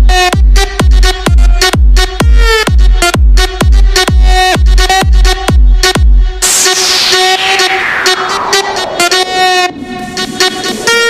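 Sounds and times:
chopped brassy synth stabs: 0.0s - 11.0s
falling noise sweep: 6.4s - 10.8s.

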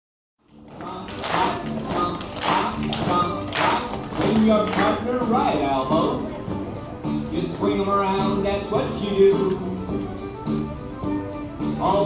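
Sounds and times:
country square-dance music: 0.4s - 12.0s
children clapping: 0.8s - 5.0s.

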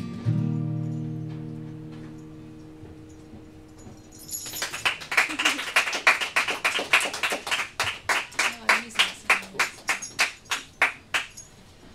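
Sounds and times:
faint high ringing: 0.2s - 5.3s
sharp clap-like clicks: 4.5s - 11.4s.

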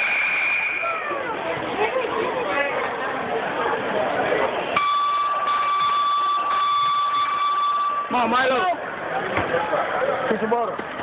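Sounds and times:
electronic buzzer long tone: 0.0s - 1.0s, 4.8s - 8.2s.

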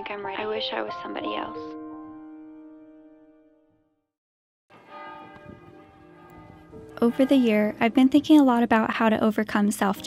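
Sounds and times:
church bells ringing: 4.7s - 9.2s.

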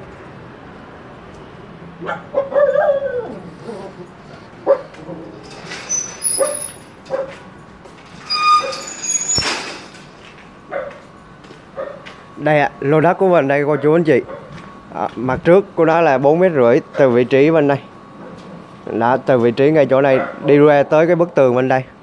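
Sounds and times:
small dog barking and yipping: 2.0s - 3.5s, 4.6s - 5.0s, 6.2s - 7.4s.

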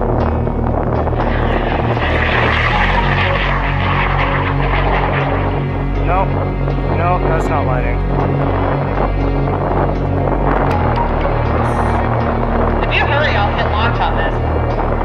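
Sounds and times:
background music with bass: 0.0s - 15.0s
rocket motor rushing roar: 0.0s - 15.0s.

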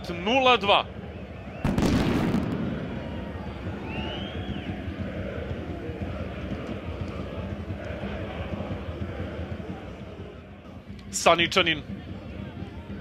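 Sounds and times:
murmur of sparse crowd: 0.9s - 11.2s, 11.8s - 13.0s
loud burst: 1.6s - 4.0s.

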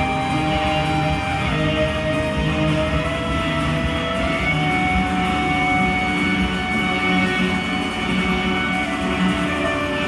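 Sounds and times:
electric guitars wall: 0.0s - 10.0s
rock band playing live: 0.0s - 10.0s.

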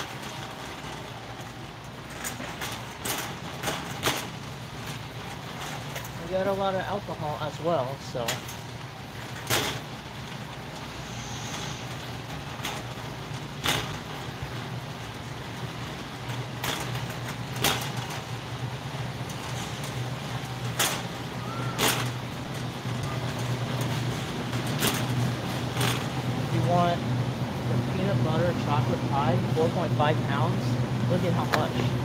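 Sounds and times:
shopping cart wheels clicking: 0.0s - 32.0s
steady low hum: 0.0s - 32.0s.

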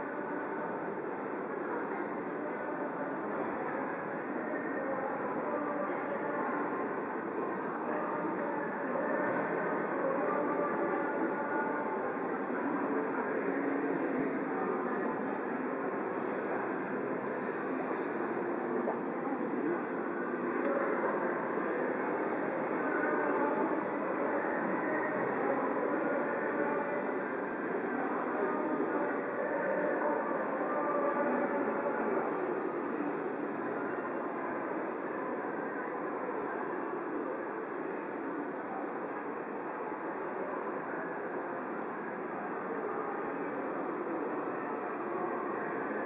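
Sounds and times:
murmur of many voices: 0.0s - 46.0s.

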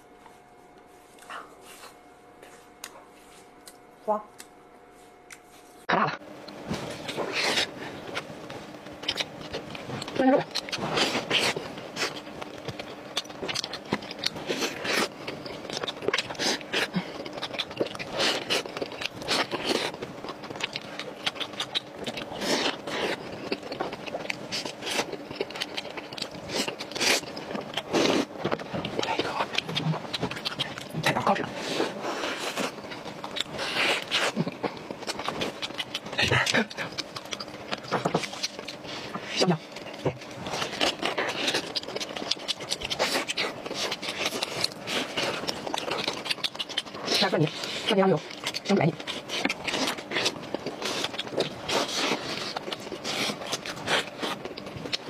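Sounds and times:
close chewing and mouth sounds: 0.2s - 5.7s, 6.4s - 55.0s.

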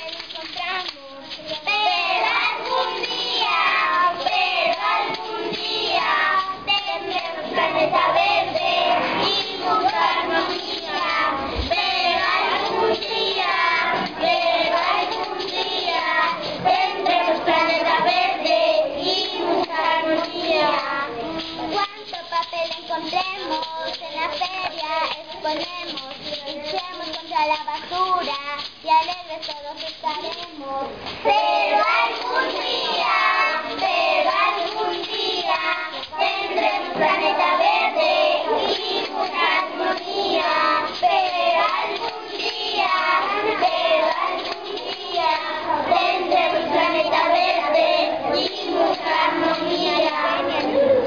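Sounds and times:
young children singing: 0.0s - 51.0s.

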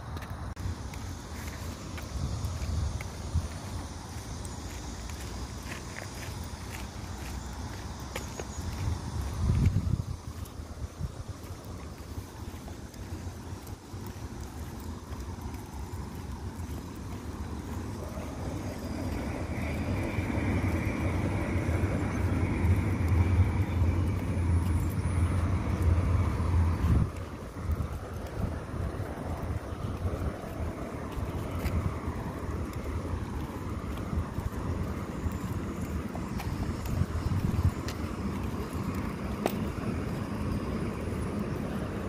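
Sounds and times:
outdoor low rumble: 0.0s - 42.0s.

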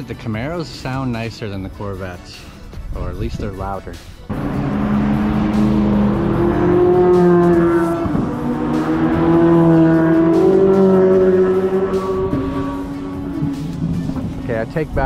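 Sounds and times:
race cars passing under power: 4.3s - 15.0s.

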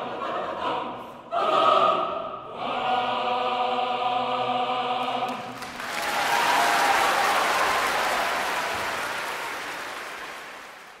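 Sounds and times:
choir singing held chord: 0.0s - 5.6s
audience applause: 5.4s - 11.0s.

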